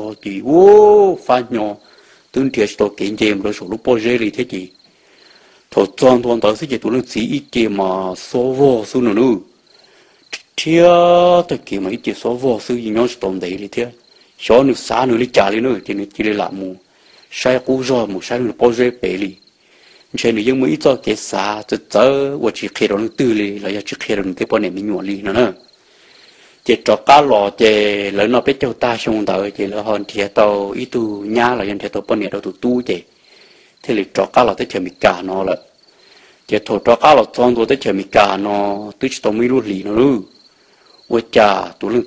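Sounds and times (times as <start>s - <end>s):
man narrating: 0.0s - 4.8s, 5.7s - 9.6s, 10.3s - 19.4s, 20.1s - 25.7s, 26.6s - 33.1s, 33.8s - 35.8s, 36.4s - 40.4s, 41.0s - 42.0s
man telling a story: 0.0s - 4.8s, 5.7s - 9.6s, 10.2s - 25.8s, 26.6s - 40.4s, 41.0s - 42.0s
crickets chirping: 0.0s - 42.0s.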